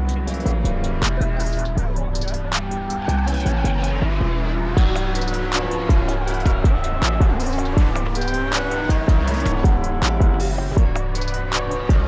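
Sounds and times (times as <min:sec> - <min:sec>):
car engine revving: 0:00.0 - 0:12.0
music with deep bass beat: 0:00.0 - 0:12.0.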